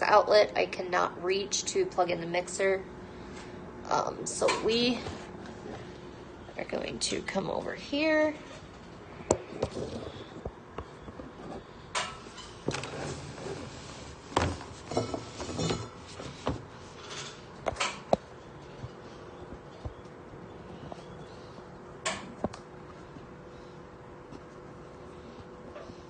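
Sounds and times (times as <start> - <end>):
kitchen things clattering: 14.4 - 16.3.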